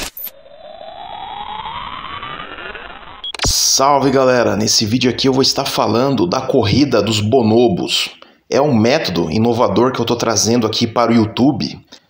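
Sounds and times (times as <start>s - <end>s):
synthetic tone sweeping upward: 0.0s - 5.6s.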